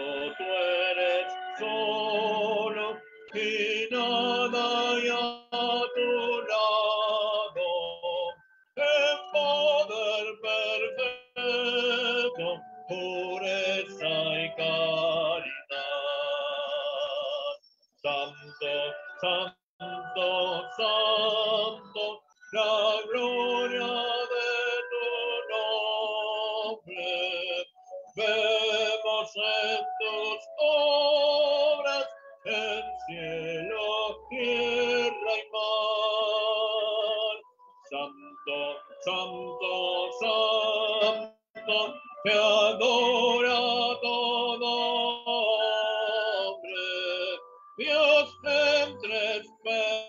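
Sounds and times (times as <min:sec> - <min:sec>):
hymn singing with vibrato: 0:00.0 - 0:50.0.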